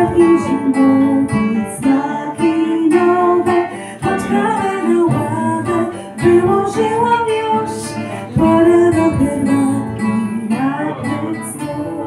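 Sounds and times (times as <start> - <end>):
acoustic guitars strumming: 0.0 - 12.0
woman singing: 0.0 - 12.0.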